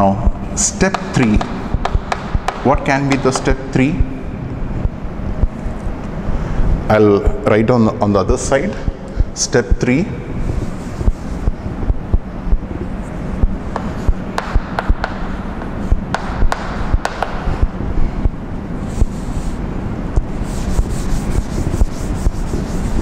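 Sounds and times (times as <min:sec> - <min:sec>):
chalk tapping and scraping: 0:00.8 - 0:03.9, 0:10.5 - 0:11.6, 0:13.0 - 0:17.6, 0:18.8 - 0:19.6, 0:20.2 - 0:23.0
cloth rubbing on blackboard: 0:10.5 - 0:11.6, 0:18.8 - 0:19.6, 0:20.3 - 0:23.0.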